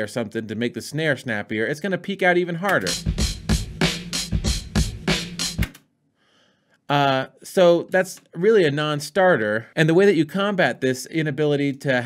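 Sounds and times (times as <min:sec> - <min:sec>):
drum loop beat: 0:02.7 - 0:05.8.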